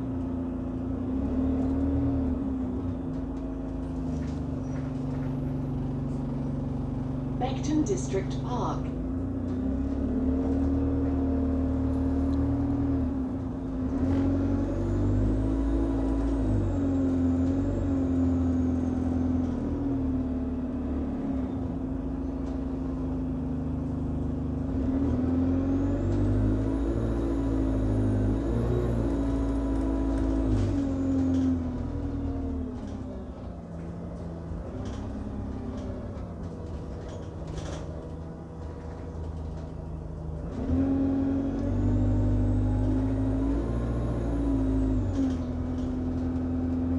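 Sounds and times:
bus diesel engine shifting gear: 0.0s - 46.9s
low road rumble: 0.0s - 46.9s.

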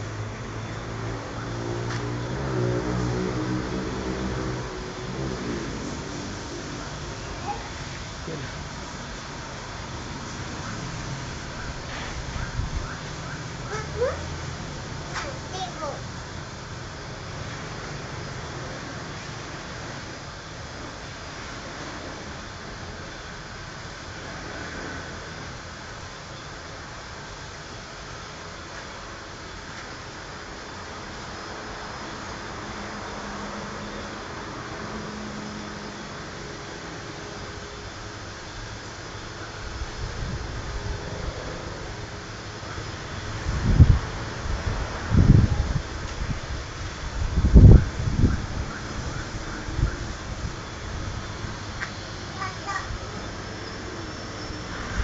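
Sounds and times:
engine humming steadily: 0.0s - 55.0s.

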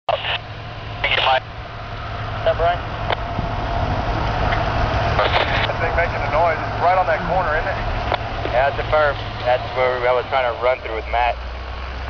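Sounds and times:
steady low rumble: 0.1s - 12.0s
man's voice: 5.2s - 7.9s, 8.5s - 11.4s.

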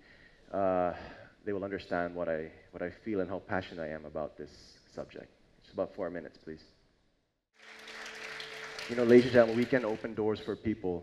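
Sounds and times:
audience applause: 7.6s - 10.3s.

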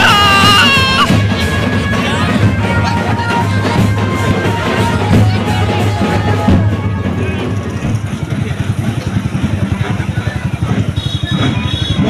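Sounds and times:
tractor engine chugging: 0.2s - 12.0s.

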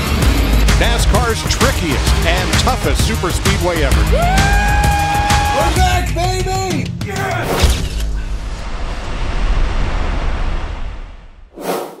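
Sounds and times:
loud low rumble: 0.0s - 4.7s, 8.2s - 11.5s.

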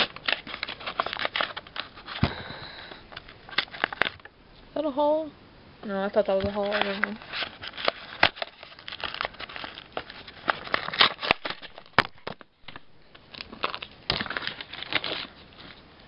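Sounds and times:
foil wrapper crinkling: 0.0s - 2.4s, 3.1s - 4.3s, 6.3s - 15.8s.

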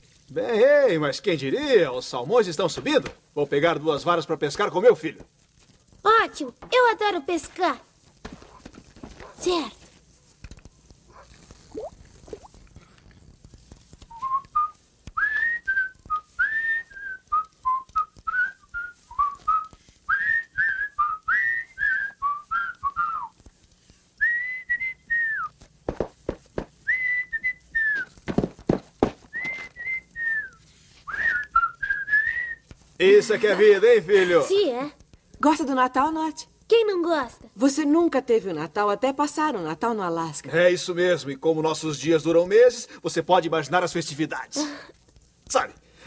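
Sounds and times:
person whistling a tune: 14.1s - 23.3s, 26.9s - 28.1s, 29.3s - 32.6s.

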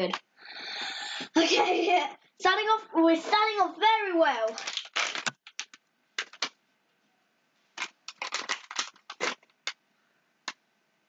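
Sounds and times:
foil packet crackling: 4.5s - 6.5s, 7.8s - 9.8s.

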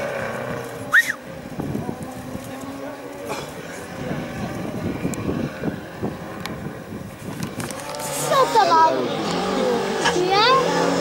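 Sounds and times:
car engine accelerating: 0.0s - 1.6s, 2.6s - 11.0s
wind on microphone: 1.2s - 2.7s, 3.8s - 10.1s.

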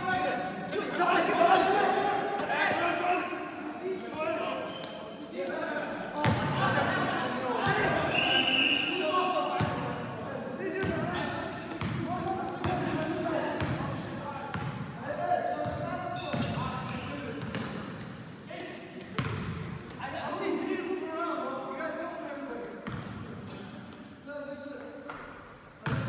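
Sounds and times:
basketball bouncing on court: 11.7s - 13.0s, 17.4s - 18.1s, 19.2s - 20.0s.

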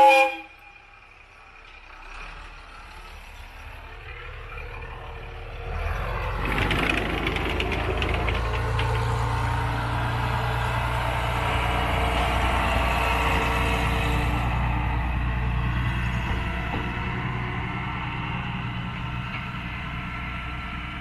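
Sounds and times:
diesel railcar engine running: 0.0s - 21.0s
clicks and rattles: 6.4s - 9.6s.

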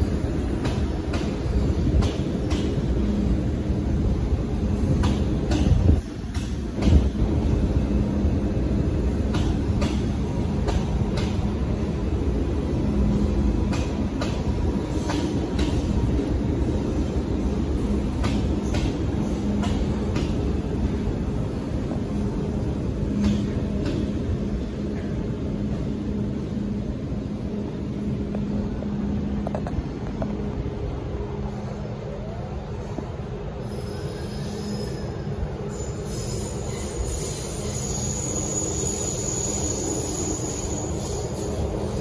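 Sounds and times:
electric train rumbling: 0.0s - 42.0s.

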